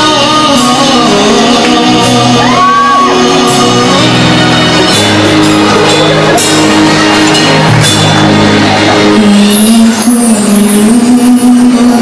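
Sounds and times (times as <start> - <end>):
man singing long notes: 0.0 - 6.9, 8.3 - 12.0
drums: 0.0 - 12.0
guitar: 0.0 - 12.0.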